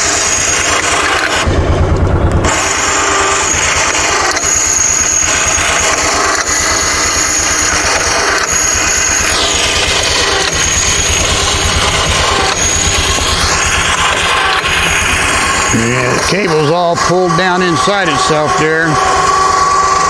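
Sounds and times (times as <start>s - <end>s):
vehicle engine idling: 0.0s - 20.0s.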